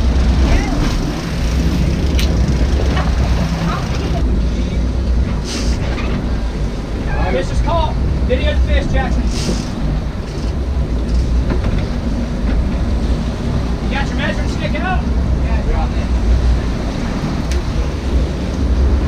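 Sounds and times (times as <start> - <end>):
boat engines rumbling: 0.0 - 19.0
water churning: 0.0 - 19.0
wind buffeting microphone: 0.0 - 19.0.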